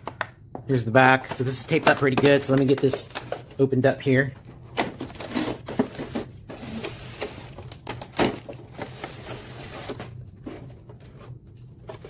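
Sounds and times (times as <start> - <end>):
plastic crackling: 1.1 - 12.0.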